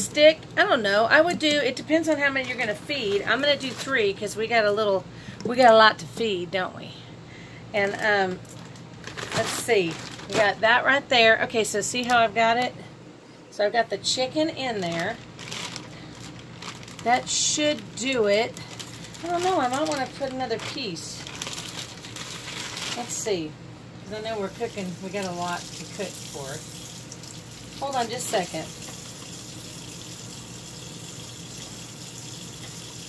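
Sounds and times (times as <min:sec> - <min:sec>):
plastic packaging rustling: 0:01.2 - 0:04.3, 0:07.9 - 0:10.8, 0:14.7 - 0:23.4.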